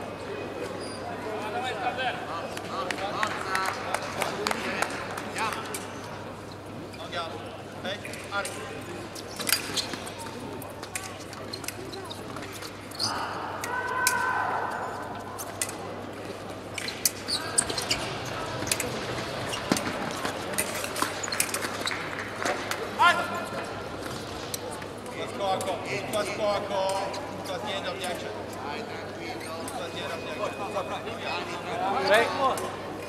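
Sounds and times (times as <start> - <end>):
voices calling in hall: 0.0 - 16.1, 17.0 - 24.0.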